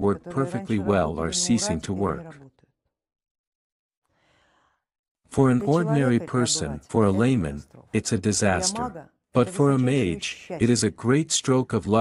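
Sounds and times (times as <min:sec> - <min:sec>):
faint breath: 0:04.1 - 0:04.9.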